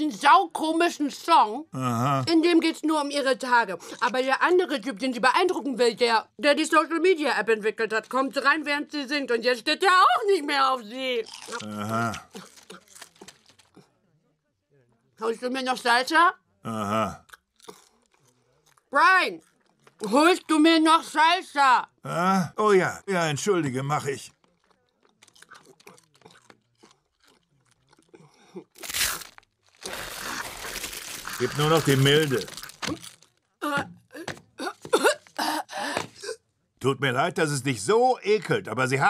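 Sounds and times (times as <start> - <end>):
chips crunching: 11.3 - 13.8, 24.4 - 33.5
wet mouth sounds: 11.3 - 13.8, 24.5 - 33.1.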